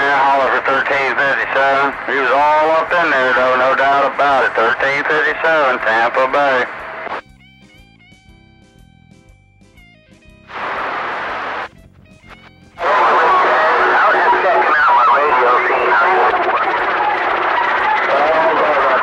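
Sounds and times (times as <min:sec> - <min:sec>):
garbled radio voices: 0:00.0 - 0:07.2, 0:10.5 - 0:19.0
radio carrier hiss: 0:00.0 - 0:07.2, 0:10.5 - 0:19.0
radio static: 0:00.0 - 0:07.2, 0:10.5 - 0:19.0
radio whistle tones: 0:00.0 - 0:07.2, 0:10.5 - 0:19.0.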